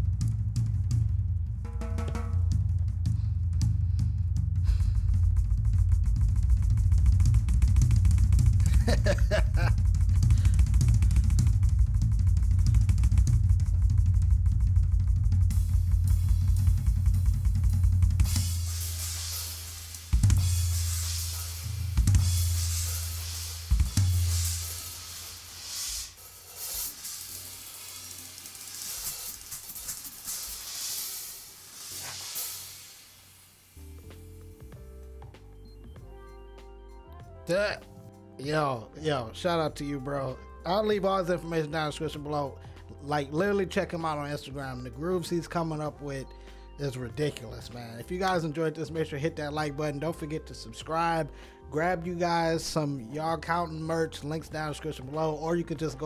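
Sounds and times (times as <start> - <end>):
heavy low hits: 0.0 - 19.2
bass drum and low drums: 0.0 - 25.3, 33.8 - 36.2.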